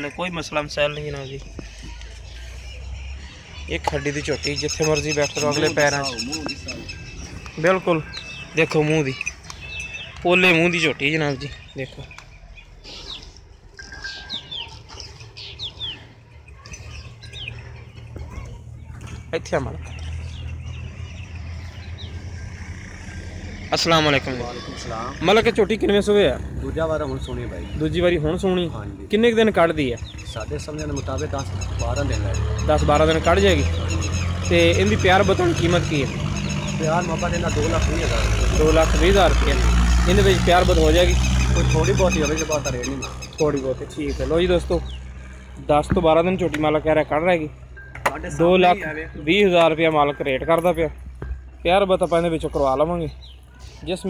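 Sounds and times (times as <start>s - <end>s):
birds chirping: 0.0s - 54.0s
engine droning: 13.3s - 53.6s.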